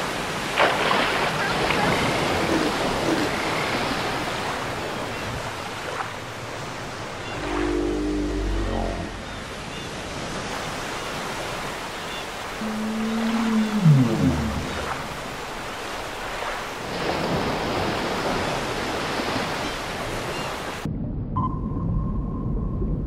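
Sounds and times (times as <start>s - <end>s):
sea waves washing: 0.0s - 20.9s
low tone sliding downward: 6.9s - 9.4s.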